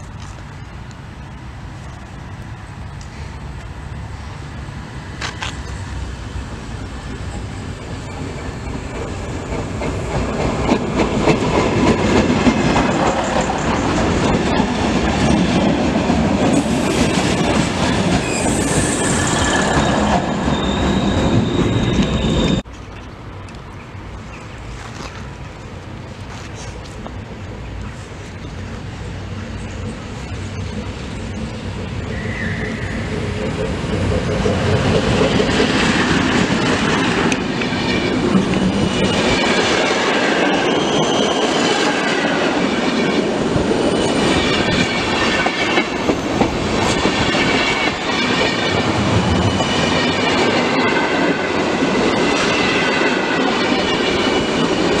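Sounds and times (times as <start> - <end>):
approaching electric train: 0.0 - 55.0
train passing with rumble: 0.0 - 55.0
thin wheel squeal: 18.2 - 22.6.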